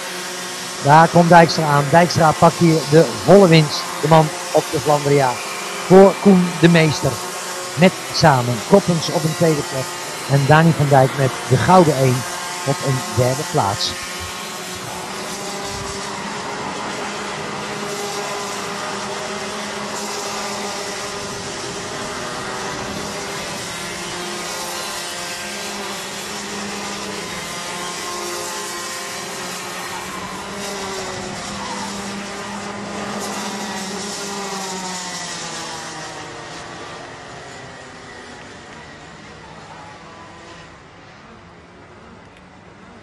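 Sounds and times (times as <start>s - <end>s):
kart engines revving: 0.0s - 42.1s.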